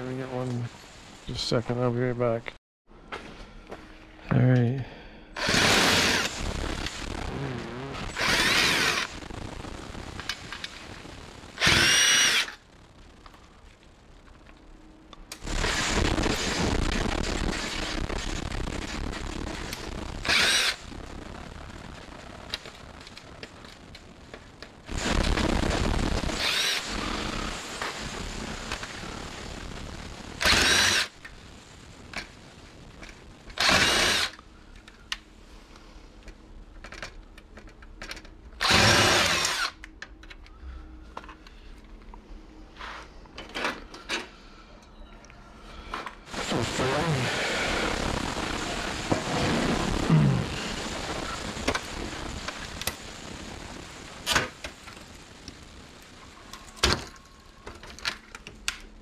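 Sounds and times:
cordless drill whining: 5.4 - 6.4, 8.0 - 9.1, 11.6 - 12.6, 20.2 - 20.8, 26.4 - 27.5, 30.4 - 31.1, 33.6 - 34.4, 38.6 - 39.8.

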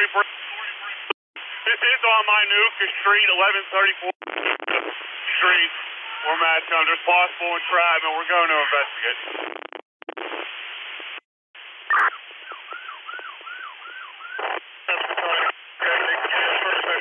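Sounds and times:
radio static hiss: 0.0 - 13.5, 14.2 - 17.0.

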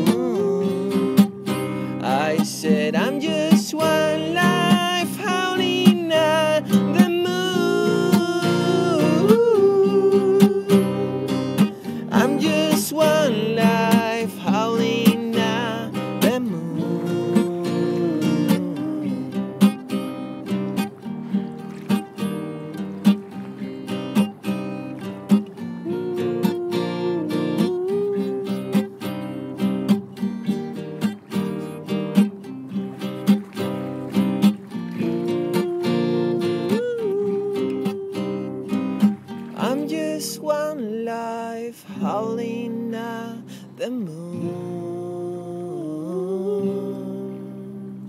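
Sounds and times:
strummed acoustic guitar: 0.0 - 48.0.

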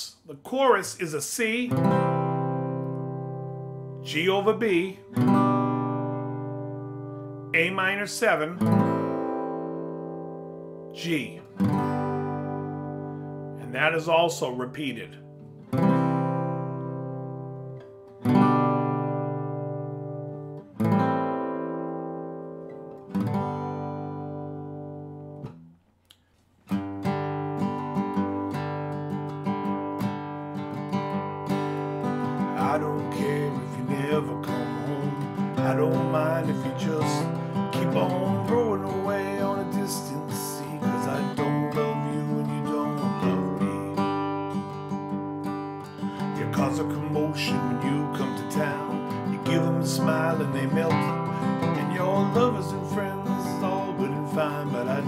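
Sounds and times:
acoustic guitar chords ringing: 0.0 - 25.8, 26.6 - 55.0
acoustic guitar rhythmic strumming: 0.0 - 55.0.

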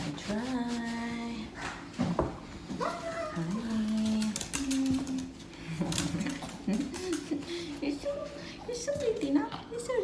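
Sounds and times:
towel rubbing wet fur: 0.0 - 1.4.

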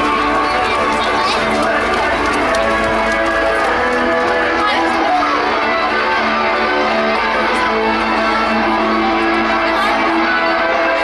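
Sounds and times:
children calling out: 0.0 - 11.0
music: 0.0 - 11.0.

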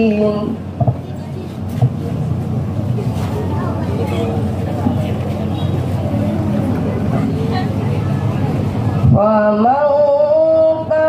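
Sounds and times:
faint voices: 0.0 - 11.0
low outdoor rumble: 0.0 - 11.0.

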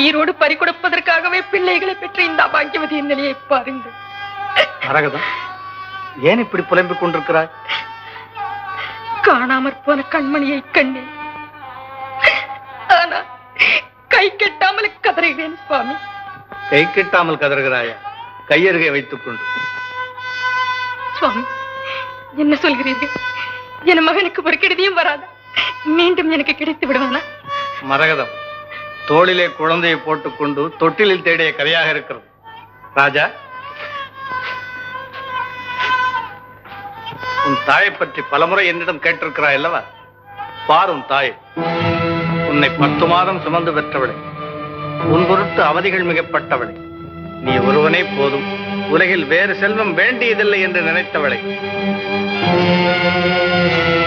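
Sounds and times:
strained wavering voice: 1.4 - 14.0
background music: 6.1 - 54.0.

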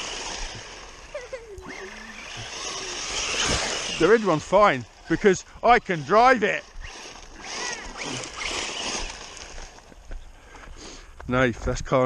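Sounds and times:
electric motor whine: 0.0 - 10.3
tyres rasping over gravel: 0.0 - 11.3.

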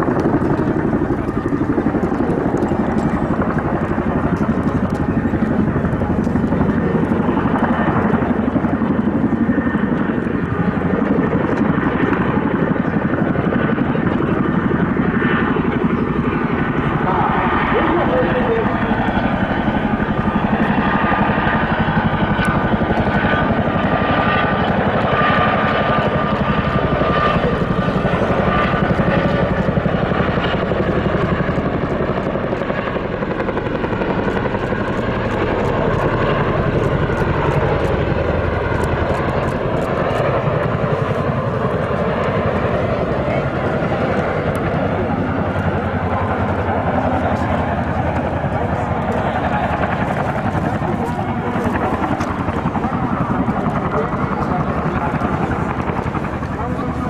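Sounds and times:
helicopter rotors beating: 0.0 - 57.0
helicopter turbine engines: 0.0 - 57.0.

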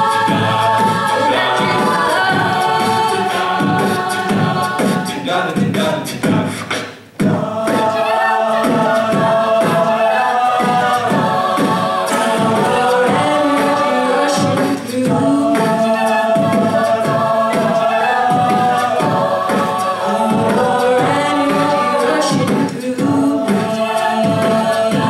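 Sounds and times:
a cappella group singing chords: 0.0 - 25.0
beatboxing: 0.0 - 25.0
woman singing into microphone: 20.0 - 25.0.

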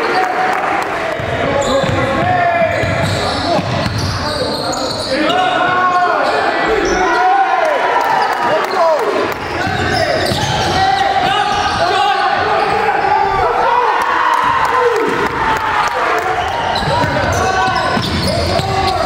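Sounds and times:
players' voices: 0.0 - 19.0
basketball bouncing on court: 1.1 - 4.2, 9.3 - 11.8, 16.7 - 19.0
sneakers squeaking on floor: 1.2 - 7.2, 8.2 - 13.4, 16.2 - 19.0.

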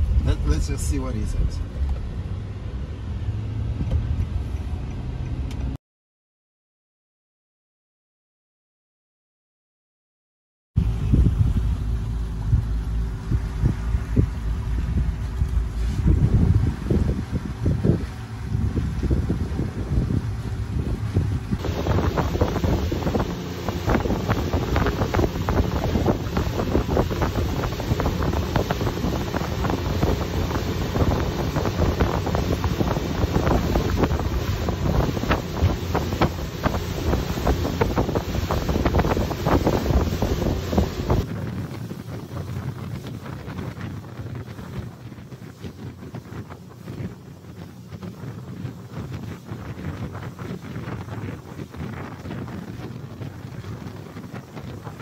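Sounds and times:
motorboat engine drone: 10.8 - 55.0
water rushing from wake: 10.8 - 55.0
wind buffeting microphone: 10.8 - 55.0.

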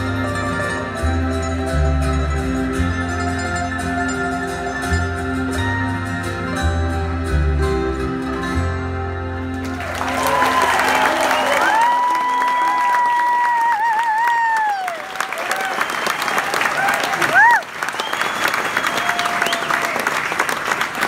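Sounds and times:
audience applauding: 9.6 - 21.0
high cheers and whoops: 9.7 - 20.2.

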